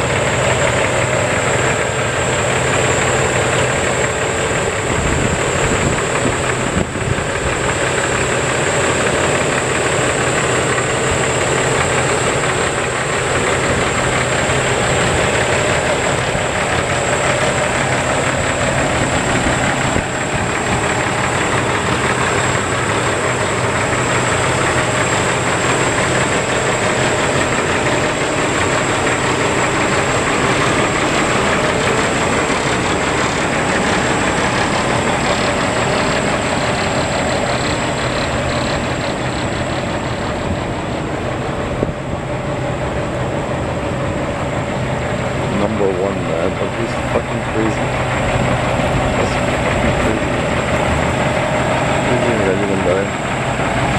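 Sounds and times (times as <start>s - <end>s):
diesel truck engine idling: 0.0s - 53.9s.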